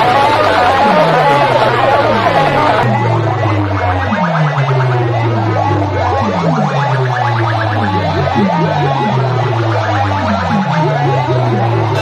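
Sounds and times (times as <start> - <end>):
loud dance music over loudspeakers: 0.0 - 12.0.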